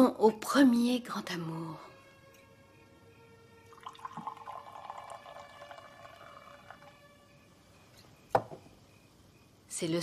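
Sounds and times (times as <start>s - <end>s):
champagne pouring into a glass: 3.7s - 7.0s.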